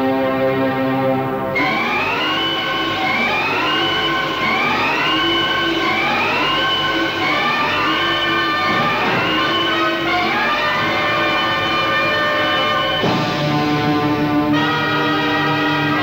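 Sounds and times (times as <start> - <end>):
siren-like rising music phrase: 1.4 - 16.0.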